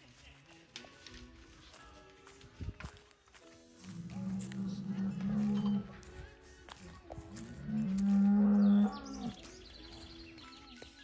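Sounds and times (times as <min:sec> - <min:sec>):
cow mooing: 0:04.0 - 0:05.9, 0:07.7 - 0:09.3.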